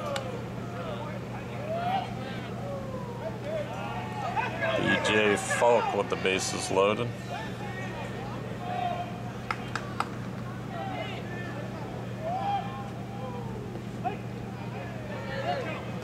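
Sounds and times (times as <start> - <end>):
distant shouts and chatter: 0.0 - 16.0
steady low hum: 0.0 - 16.0.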